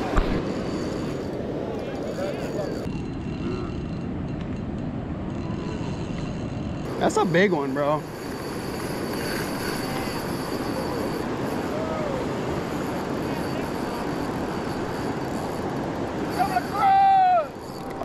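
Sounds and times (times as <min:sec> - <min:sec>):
person shouting: 0:16.4 - 0:17.5.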